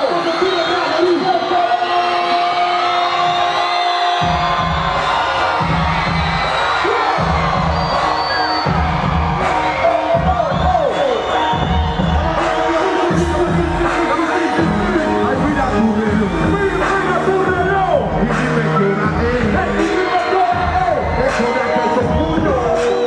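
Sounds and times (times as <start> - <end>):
crowd cheering: 0.0 - 23.0
live music over sound system: 0.0 - 23.0
heavy repeating bass beat: 4.2 - 23.0.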